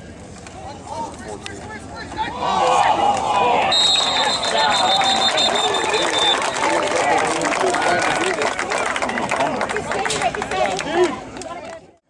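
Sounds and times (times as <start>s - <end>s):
players shouting and talking: 0.5s - 11.8s
whistle long blast: 3.7s - 6.6s.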